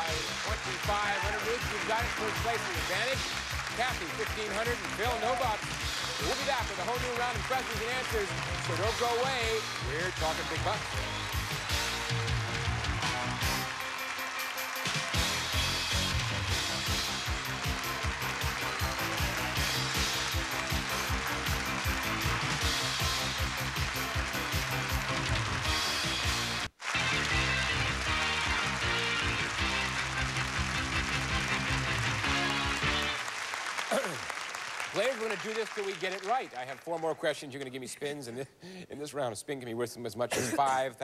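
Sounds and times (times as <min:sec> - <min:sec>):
upbeat game-show theme music: 0:00.0 - 0:39.3.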